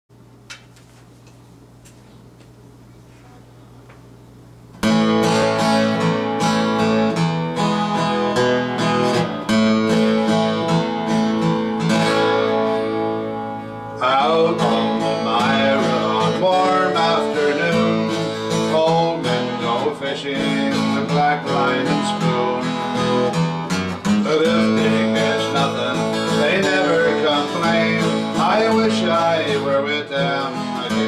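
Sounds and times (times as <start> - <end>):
acoustic guitar strummed: 4.8 - 31.0
man singing: 14.0 - 23.3, 24.0 - 31.0.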